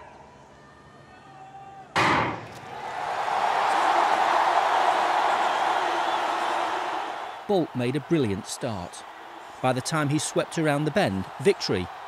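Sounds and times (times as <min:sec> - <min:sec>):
stadium crowd cheering: 0:00.0 - 0:12.0
starter's gun firing: 0:02.0 - 0:02.6.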